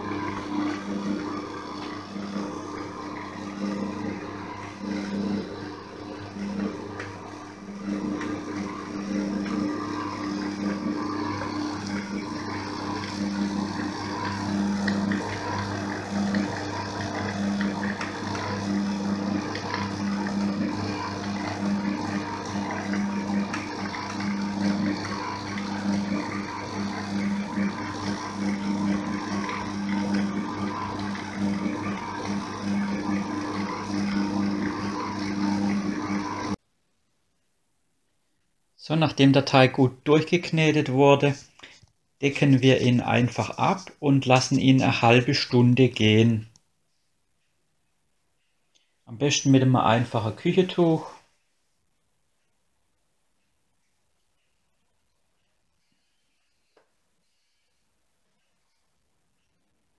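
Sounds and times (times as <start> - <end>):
stand mixer motor kneading dough: 0.0 - 36.6, 39.0 - 46.5, 49.2 - 51.2.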